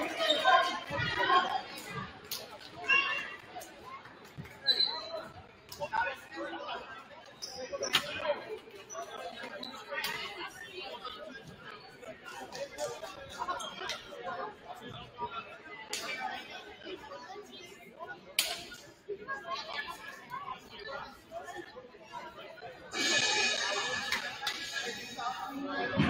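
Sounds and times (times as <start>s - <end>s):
chatter of many voices echoing: 0.0s - 26.0s.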